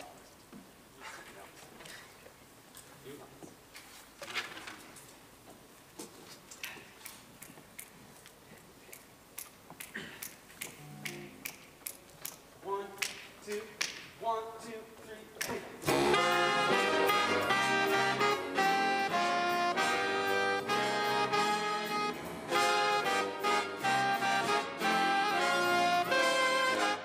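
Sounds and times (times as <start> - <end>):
bass and piano notes: 15.8 - 27.0
jazz big band playing: 15.8 - 27.0.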